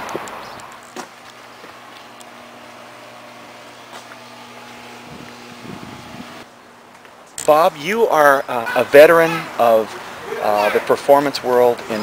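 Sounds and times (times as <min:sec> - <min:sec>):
low mechanical hum: 0:00.3 - 0:07.4.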